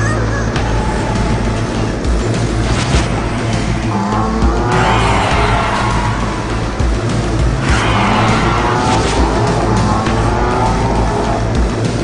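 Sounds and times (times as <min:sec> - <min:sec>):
car engine revving: 0:00.5 - 0:12.0
music with heavy bass beat: 0:00.6 - 0:12.0.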